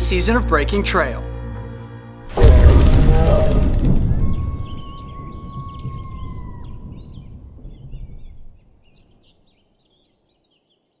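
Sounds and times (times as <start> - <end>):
low rumbling noise: 2.3 - 8.5.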